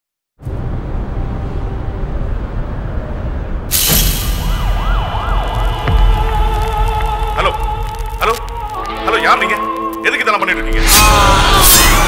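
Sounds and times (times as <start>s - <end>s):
low rumble: 0.4s - 9.6s
siren wailing: 4.0s - 10.1s.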